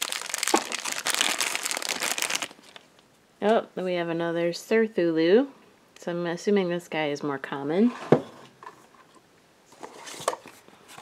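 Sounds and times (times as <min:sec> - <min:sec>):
plastic wrapper crinkling: 0:00.0 - 0:03.0.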